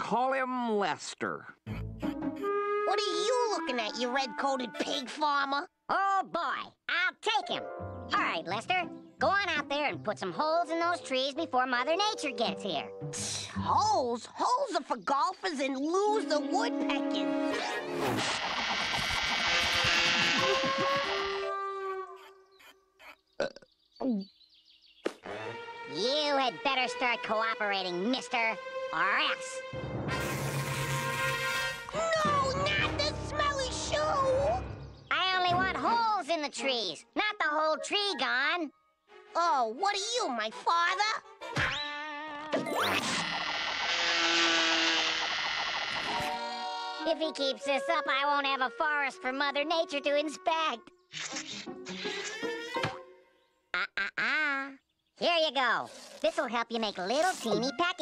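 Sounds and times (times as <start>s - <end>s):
cartoon rapid gnawing chatter: 18.0s - 21.5s, 42.7s - 46.4s.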